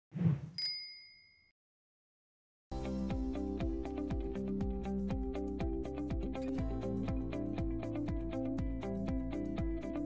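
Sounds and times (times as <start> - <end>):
bicycle bell ding: 0.6 - 1.5.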